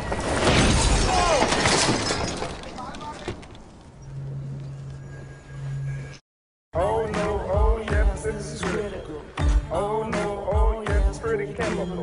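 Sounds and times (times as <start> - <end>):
heavy crash with shattering debris: 0.0 - 3.4.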